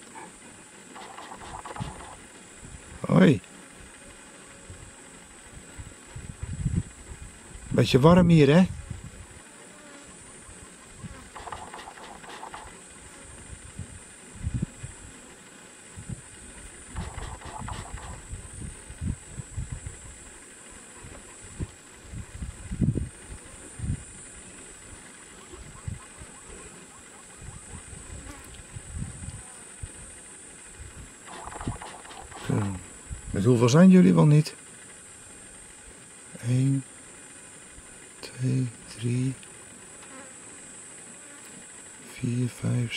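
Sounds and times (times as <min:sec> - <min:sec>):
high-pitched insect drone: 0:00.9 - 0:02.3, 0:10.2 - 0:13.7, 0:16.2 - 0:21.8, 0:22.8 - 0:35.6.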